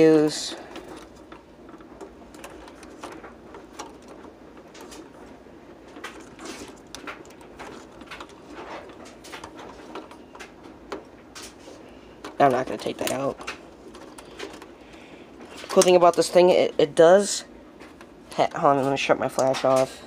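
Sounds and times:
handling clicks and scrapes: 0:00.0 - 0:16.6.

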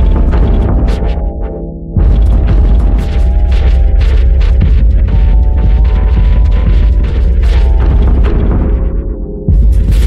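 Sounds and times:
droning soundtrack with low rumble: 0:00.0 - 0:10.0.

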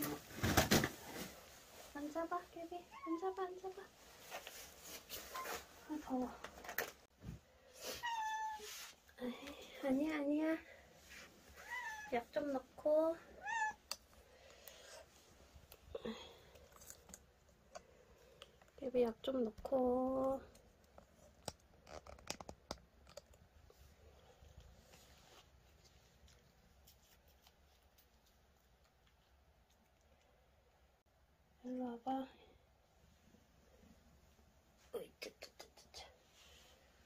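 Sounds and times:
cat meowing: 0:13.4 - 0:13.8.

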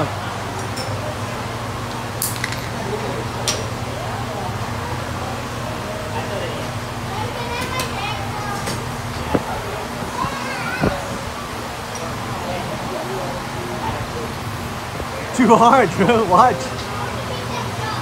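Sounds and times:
faint distant voices: 0:00.0 - 0:18.0
steady low hum: 0:00.0 - 0:18.0.

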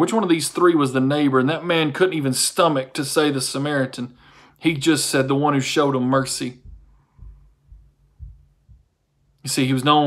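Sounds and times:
faint low thumps: 0:06.2 - 0:09.3.

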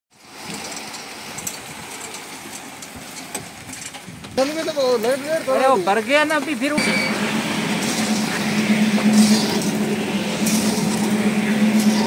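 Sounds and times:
brick plant machinery running: 0:06.3 - 0:12.0.

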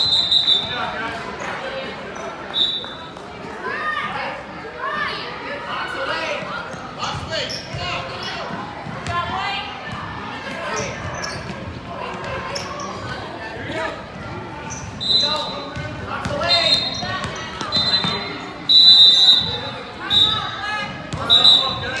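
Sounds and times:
voices in echoing hall: 0:00.0 - 0:22.0.

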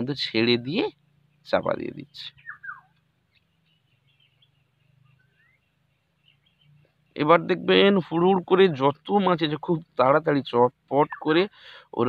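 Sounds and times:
birds chirping faintly: 0:00.0 - 0:12.0
low steady hum: 0:00.0 - 0:12.0.

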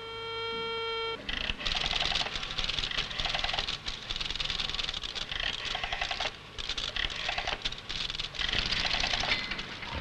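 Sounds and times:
telephone dial tone: 0:00.0 - 0:03.8
rotary dial clicking and rattling: 0:01.3 - 0:09.5.

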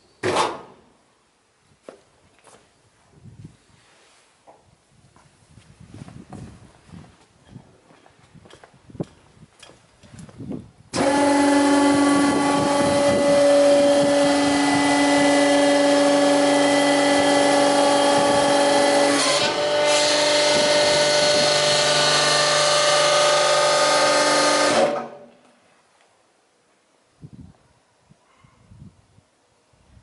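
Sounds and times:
hydraulic pump motor humming: 0:10.9 - 0:25.3.

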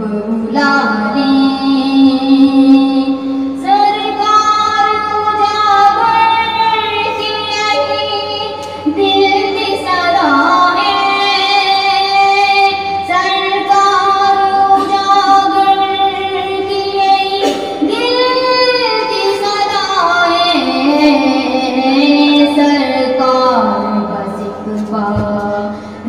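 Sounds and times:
woman singing: 0:00.0 - 0:26.0.

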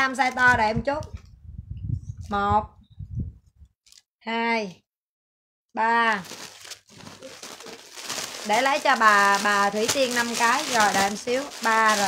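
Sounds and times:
clothes and plastic wrapping rustling: 0:05.9 - 0:12.0.

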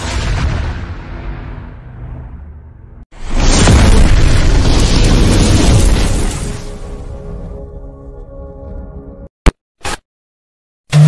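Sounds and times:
explosion boom and rumble: 0:00.0 - 0:07.6.

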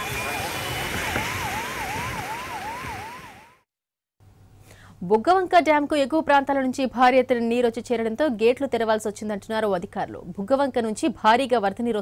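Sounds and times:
steady rushing noise: 0:00.0 - 0:03.5
siren wailing: 0:00.0 - 0:03.6.

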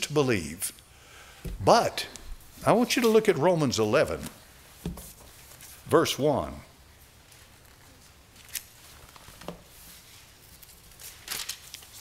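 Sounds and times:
paper pages rustling: 0:07.3 - 0:12.0.

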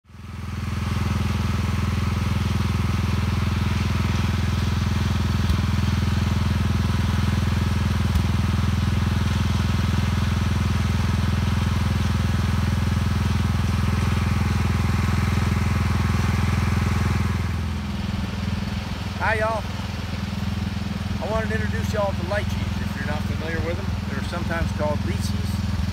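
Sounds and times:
engine running steadily: 0:00.0 - 0:25.9.

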